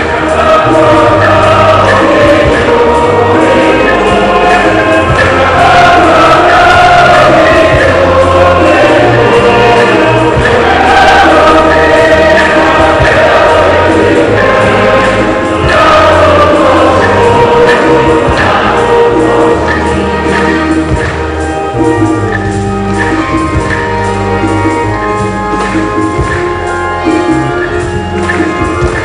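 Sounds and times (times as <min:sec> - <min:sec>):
church choir singing: 0:00.0 - 0:29.0
low bass notes: 0:00.0 - 0:29.0.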